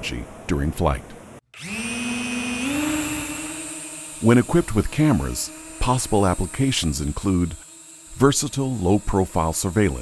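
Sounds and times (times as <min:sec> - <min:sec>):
drone motor whine: 0:01.6 - 0:10.0.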